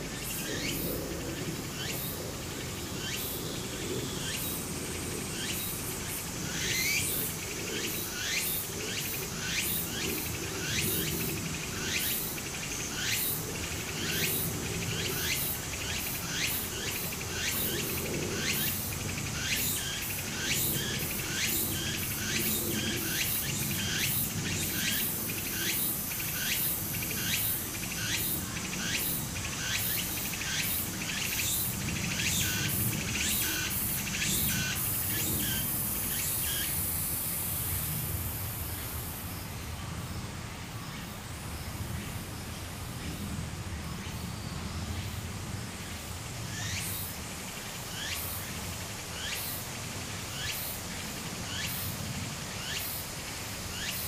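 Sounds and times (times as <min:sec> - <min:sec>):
cicadas calling: 0:00.0 - 0:54.0.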